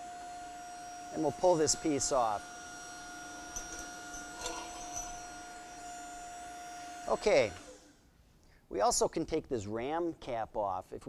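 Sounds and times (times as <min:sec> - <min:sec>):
hydraulic pump motor hum: 0:00.0 - 0:08.0.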